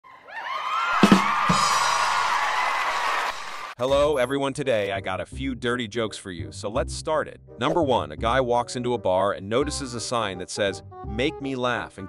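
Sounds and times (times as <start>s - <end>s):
crowd cheering: 0.0s - 3.8s
drum hits: 1.0s - 2.4s.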